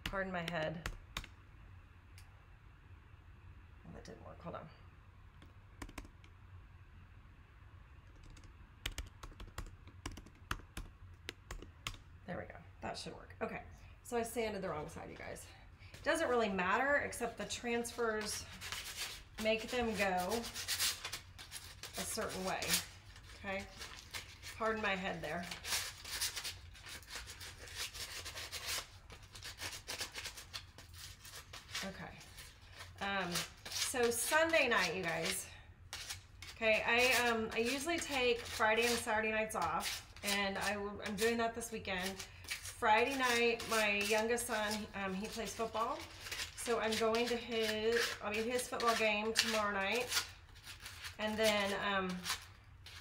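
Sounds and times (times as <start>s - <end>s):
sandpaper rubbing on wood: 17.8s - 23.0s, 23.6s - 41.4s, 42.0s - 53.0s.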